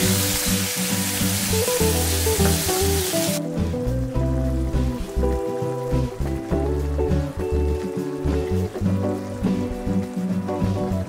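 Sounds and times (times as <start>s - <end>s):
background music: 0.0s - 11.0s
sauce sizzling in a frying pan: 0.0s - 11.0s.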